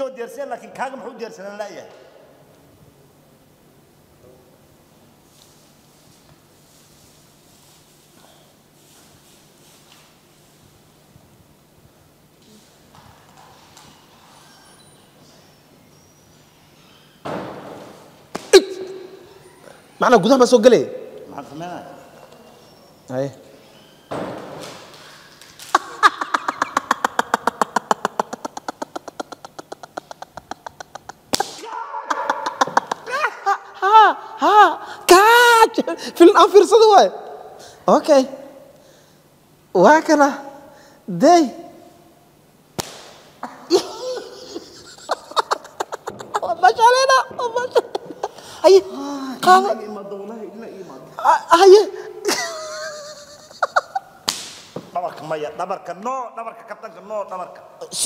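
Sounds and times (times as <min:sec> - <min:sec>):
sharp slap: 0:17.3 - 0:19.0, 0:31.3 - 0:31.8, 0:42.7 - 0:43.4, 0:54.2 - 0:54.9
men laughing hard: 0:25.6 - 0:34.8, 0:43.4 - 0:49.0, 0:52.2 - 0:54.2.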